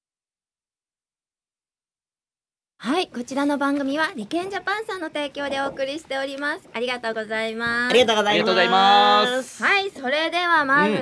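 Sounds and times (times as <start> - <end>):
person speaking: 7.9 - 9.6.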